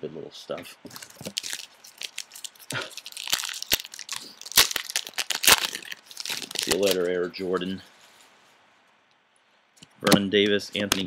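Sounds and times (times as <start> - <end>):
foil wrapper crinkling and tearing: 0.9 - 7.2.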